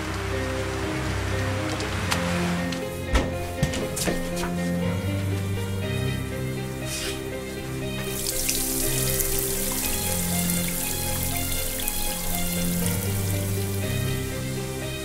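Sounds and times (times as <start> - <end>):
slow film music: 0.0 - 15.0
shower water splashing: 6.8 - 15.0.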